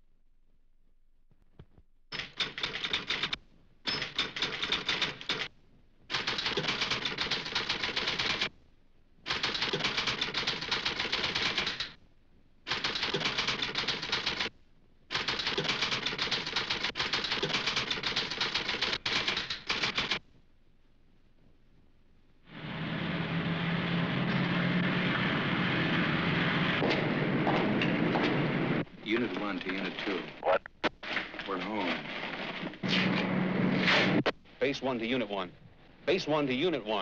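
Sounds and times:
typewriter typing: 2.1s - 5.5s, 6.1s - 8.5s, 9.3s - 12.0s, 12.7s - 14.5s, 15.1s - 20.2s.

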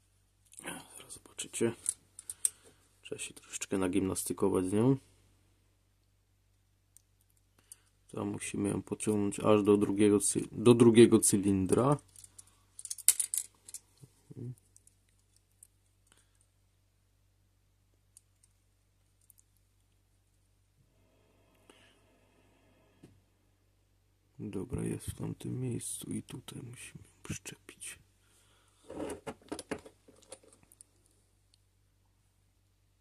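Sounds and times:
plastic parts clicking and scraping: 1.8s - 2.7s, 11.7s - 15.7s, 28.8s - 30.8s.

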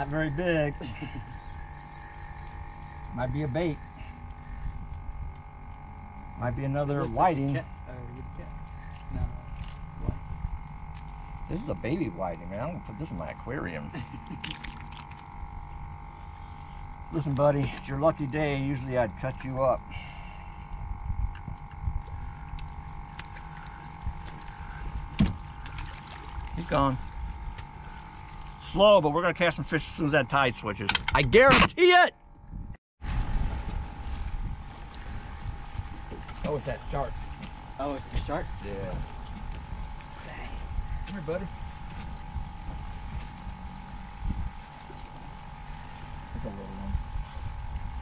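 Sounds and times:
steady low rumble: 0.0s - 31.3s, 32.3s - 48.0s
faint steady hum: 0.0s - 48.0s
fish splashing into water: 14.3s - 15.3s, 25.4s - 26.6s.

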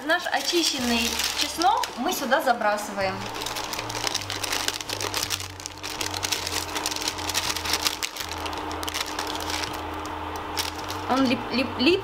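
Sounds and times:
parchment paper crinkling: 0.0s - 11.4s
steady low hum: 0.0s - 12.0s.

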